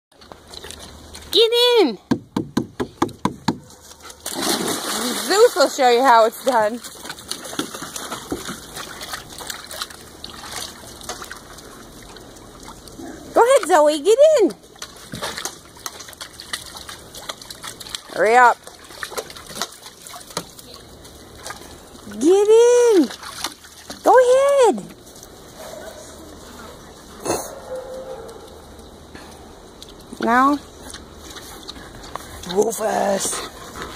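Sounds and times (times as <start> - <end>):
splashes and knocks: 2.1 - 13.8, 14.7 - 21.8, 23.0 - 24.6
dog lapping water: 3.6 - 13.6, 14.7 - 22.1, 23.0 - 24.0.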